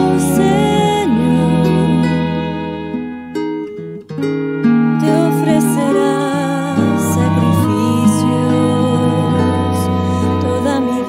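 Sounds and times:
strummed acoustic guitar music: 0.0 - 11.0.

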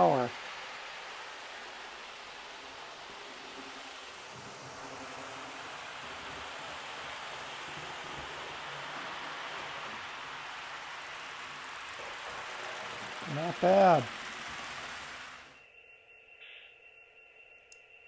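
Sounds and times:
model train motor whirring: 0.0 - 15.6
model train wheels on track: 0.0 - 18.0.

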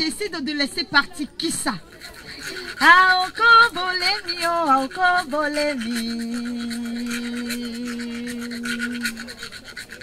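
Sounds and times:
hand percussion scraping rhythm: 0.0 - 10.0.

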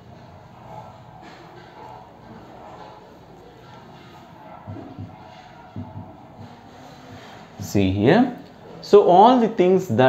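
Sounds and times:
low room noise: 0.0 - 10.0
man speaking: 7.6 - 10.0.

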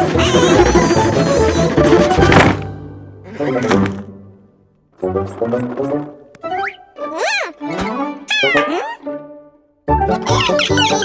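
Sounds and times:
squeaky cartoon creature calls: 0.0 - 1.9, 6.6 - 7.6, 8.2 - 9.1, 10.2 - 11.0.

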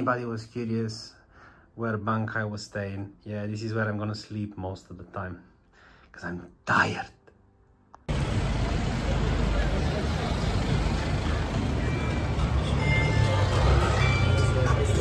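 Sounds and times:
crowd hubbub: 8.1 - 15.0
road traffic rumble: 8.1 - 15.0.

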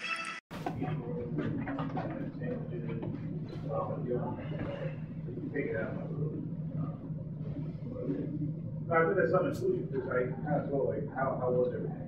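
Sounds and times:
steady low hum: 0.5 - 12.0.

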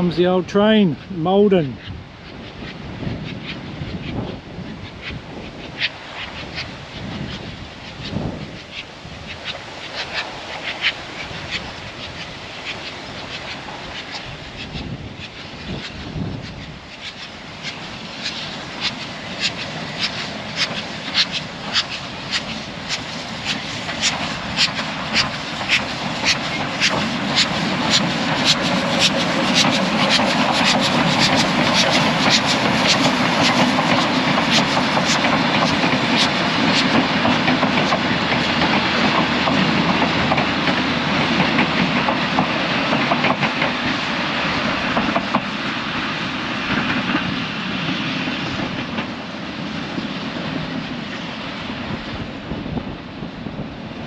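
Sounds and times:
steam locomotive chuffing: 5.0 - 53.7
train carriages rattling on rails: 17.0 - 51.3.

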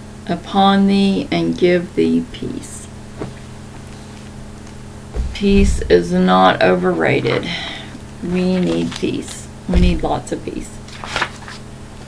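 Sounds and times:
low buzzy hum: 0.0 - 12.0.

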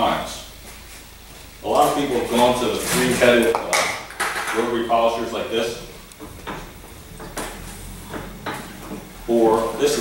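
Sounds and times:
polisher head knocking on wood: 6.2 - 9.1.

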